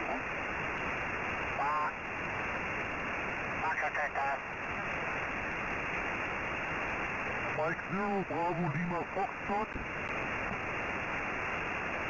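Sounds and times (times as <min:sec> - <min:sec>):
radio receiver hiss: 0:00.0 - 0:12.0
faint voice over radio: 0:01.5 - 0:02.0, 0:03.6 - 0:04.4.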